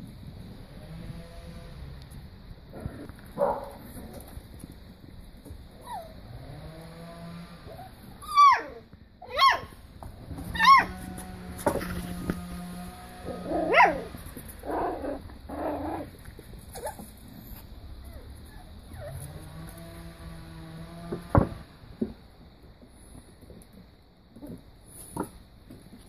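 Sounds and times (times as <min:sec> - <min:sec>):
puppies yelping and whining: 0:05.8 - 0:06.3, 0:07.6 - 0:09.8, 0:10.4 - 0:11.1, 0:13.3 - 0:15.2, 0:16.0 - 0:19.4.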